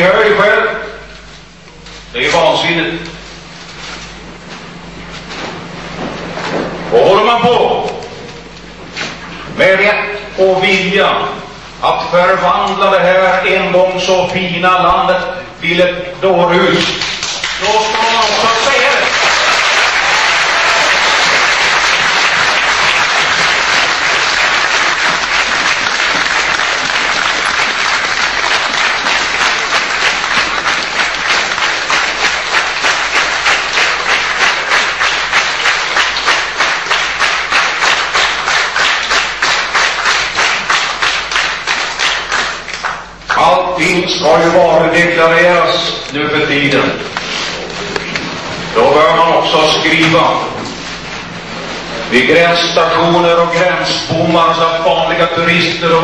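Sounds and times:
audience clapping: 16.8 - 43.5.

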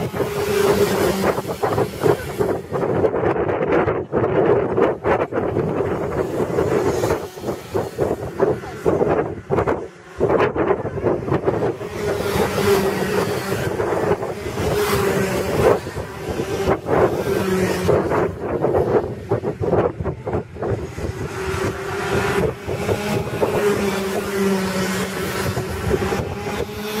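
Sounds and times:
racing kart engines: 0.0 - 27.0
wind buffeting microphone: 0.0 - 27.0.

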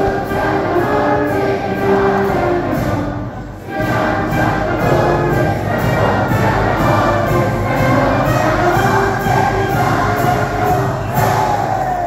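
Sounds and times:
concert band playing held chords: 0.0 - 12.0.

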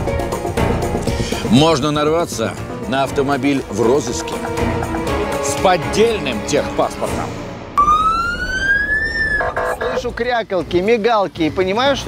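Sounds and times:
buzzy police horn blast: 7.4 - 10.0
police siren wail: 7.8 - 10.0.

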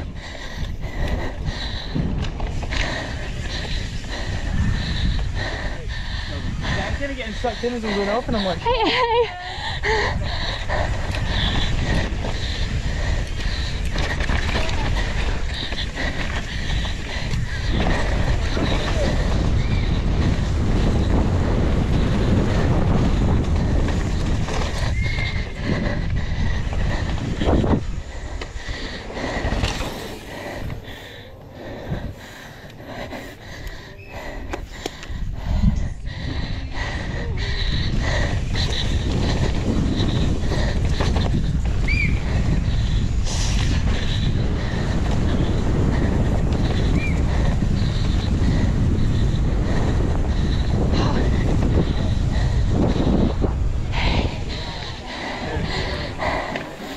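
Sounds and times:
bike rattling over bumps: 0.0 - 56.9
wind buffeting microphone: 0.0 - 56.9
tyres on loose dirt: 0.4 - 56.9.

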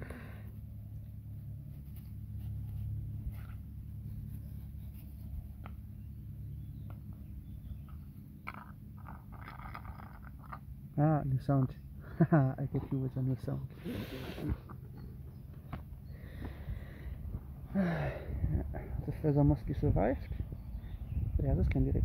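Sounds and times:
low background rumble: 0.0 - 22.0
fingers scratching in grass: 1.4 - 6.0.

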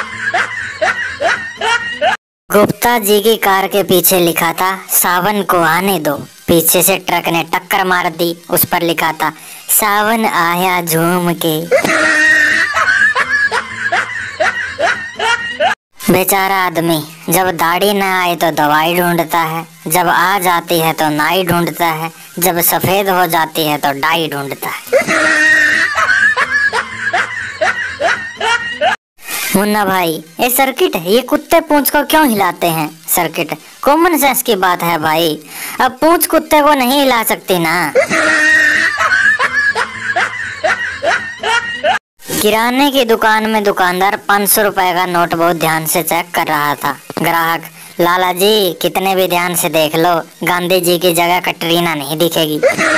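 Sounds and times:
person laughing in short bursts: 11.7 - 15.8, 24.9 - 29.0, 38.0 - 42.0, 52.6 - 52.9
person snickering: 11.7 - 15.8, 24.9 - 29.0, 38.0 - 42.0, 52.6 - 52.9.

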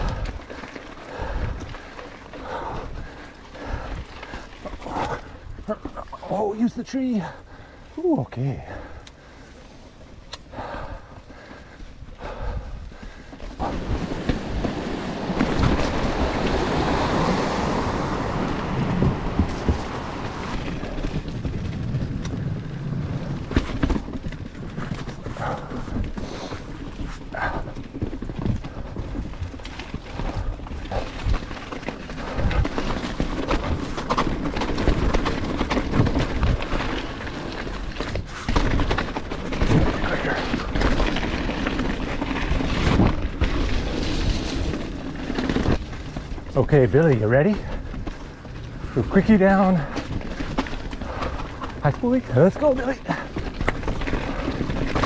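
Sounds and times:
bike frame rattling: 0.0 - 7.8, 8.6 - 55.0
tyres rolling over dirt: 0.0 - 55.0.

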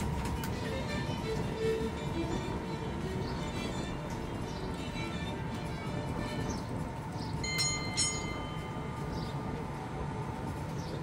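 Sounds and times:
street and vehicle noise: 0.0 - 11.0
small bell dings: 7.4 - 8.9.

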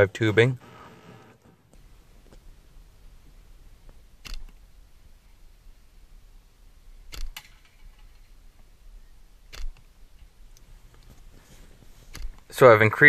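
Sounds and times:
slingshot click: 7.1 - 7.6, 9.5 - 9.9
slingshot snaps: 7.1 - 7.6.

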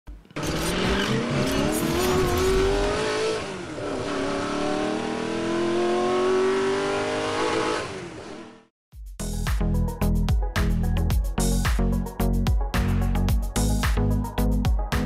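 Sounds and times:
car engine accelerating hard: 0.4 - 8.7.

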